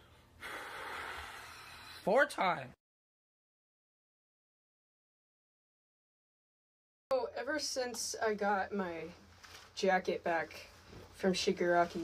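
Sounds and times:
long breathy exhale: 0:00.0 - 0:02.0.

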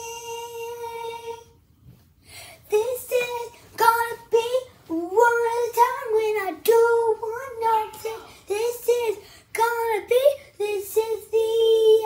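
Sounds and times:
child singing: 0:00.0 - 0:01.6, 0:02.7 - 0:12.0.

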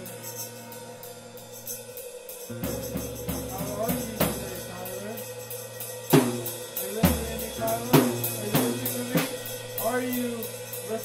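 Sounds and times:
drum cymbals struck: 0:00.0 - 0:11.0.

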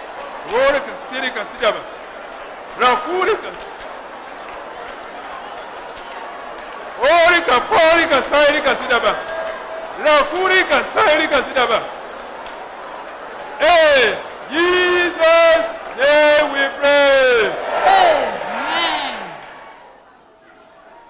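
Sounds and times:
fast speech: 0:10.0 - 0:11.9.

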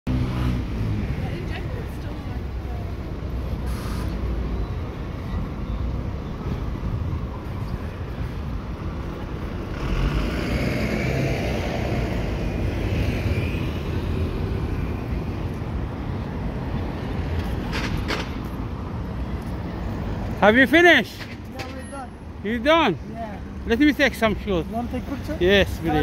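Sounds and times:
traffic rumble: 0:00.1 - 0:26.0
vehicle passing: 0:08.5 - 0:21.0.

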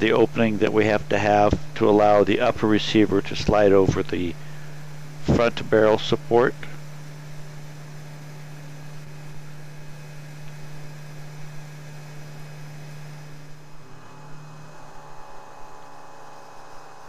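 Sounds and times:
milling machine humming: 0:00.0 - 0:17.0.

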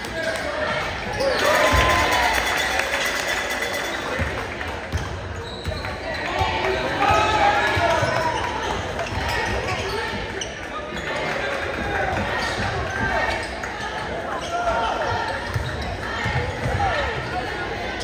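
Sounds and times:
crowd chatter echoing: 0:00.0 - 0:18.0.

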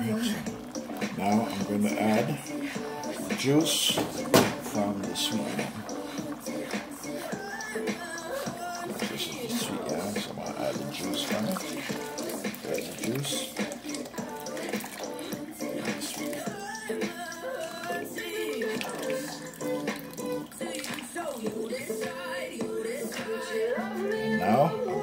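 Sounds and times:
background music with singing: 0:00.0 - 0:25.0
liquid pouring into a pot: 0:00.5 - 0:16.9, 0:17.5 - 0:21.7.

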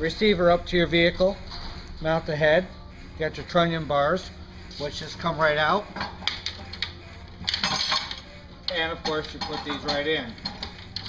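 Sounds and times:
metal bars clinking and clanking: 0:04.8 - 0:11.0.

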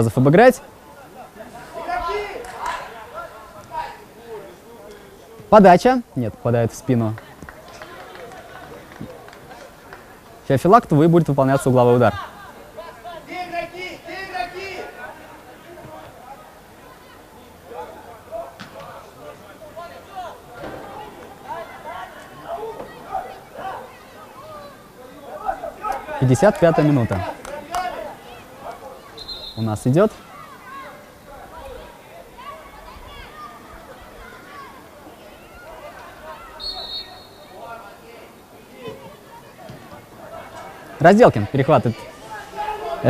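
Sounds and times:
distant players shouting: 0:00.6 - 0:05.6, 0:11.7 - 0:43.0.

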